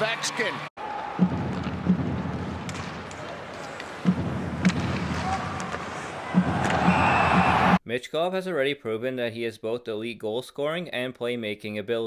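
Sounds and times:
arena crowd noise: 0.0s - 7.8s
low thumps: 1.2s - 3.1s.

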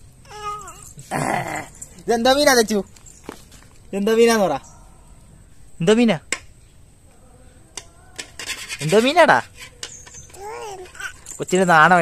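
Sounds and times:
person's drawn-out vocal call: 1.0s - 1.8s.

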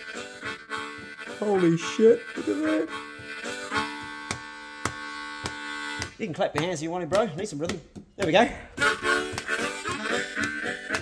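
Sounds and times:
harmonica chord: 0.0s - 6.6s, 8.6s - 11.0s
sharp taps: 3.1s - 11.0s.

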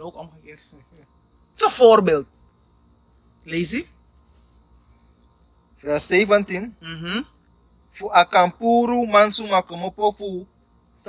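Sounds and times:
faint high-pitched whine: 0.0s - 11.0s
person speaking: 8.0s - 10.5s.

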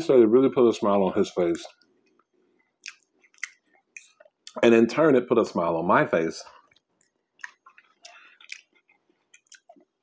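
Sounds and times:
person chewing food: 1.8s - 4.6s, 6.6s - 10.0s
wet mouth smacks: 2.8s - 4.4s, 6.7s - 9.9s.

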